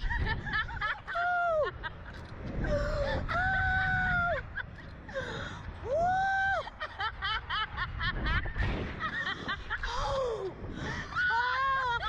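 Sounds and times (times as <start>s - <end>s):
wind buffeting microphone: 0.0s - 12.0s
woman screaming: 11.1s - 12.0s.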